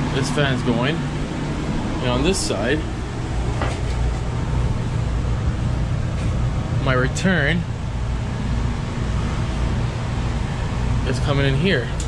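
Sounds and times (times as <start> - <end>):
blower fan drone with airy hiss: 0.0 - 12.0.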